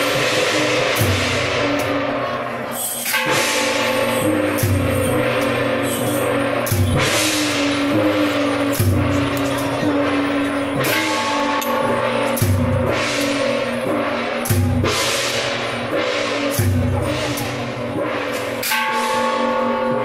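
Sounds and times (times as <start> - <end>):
big drum beat: 0.0 - 20.0
cymbal crash: 0.0 - 20.0.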